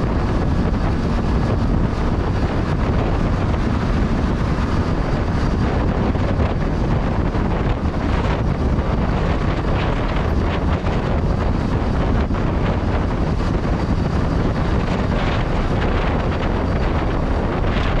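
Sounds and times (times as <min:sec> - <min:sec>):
vehicle road and engine noise: 0:00.0 - 0:18.0
wind buffeting microphone: 0:00.0 - 0:18.0.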